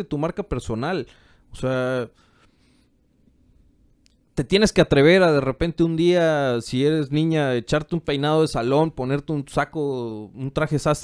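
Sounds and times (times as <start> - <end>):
man speaking: 0.0 - 2.2, 4.4 - 11.0
faint soft noise: 0.5 - 4.6.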